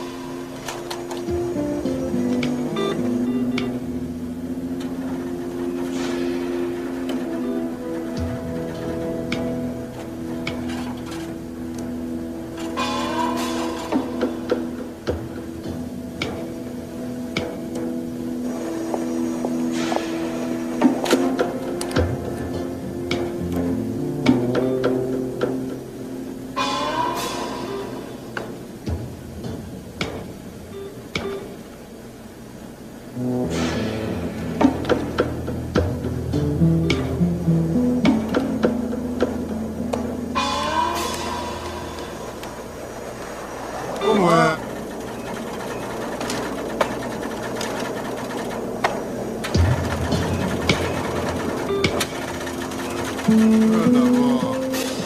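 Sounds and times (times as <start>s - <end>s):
tense film score music: 0.0s - 31.4s, 33.1s - 55.0s.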